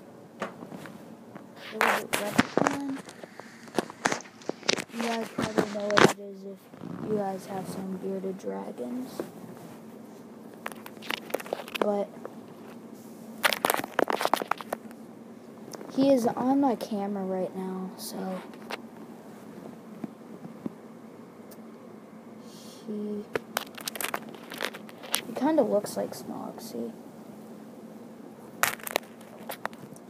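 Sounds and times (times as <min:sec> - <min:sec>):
claws scratching on a phone: 0:01.6 - 0:05.8, 0:10.7 - 0:11.9, 0:13.4 - 0:14.9, 0:23.4 - 0:25.3.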